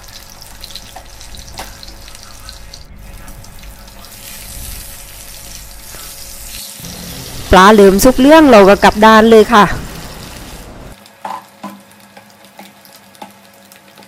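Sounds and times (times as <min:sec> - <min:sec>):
fish sizzling in hot oil: 0:00.0 - 0:14.0.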